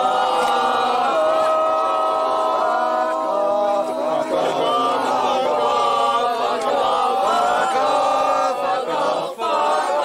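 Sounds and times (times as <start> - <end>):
group singing a chant: 0.0 - 10.0.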